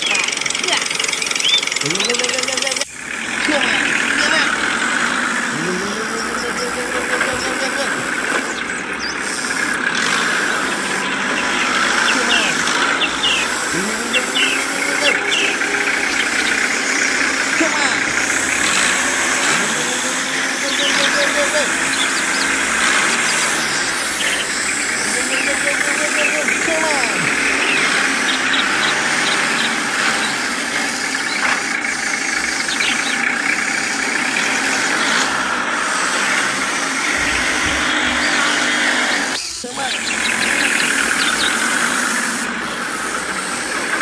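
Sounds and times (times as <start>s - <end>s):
model tractor motor running: 0.0s - 44.0s.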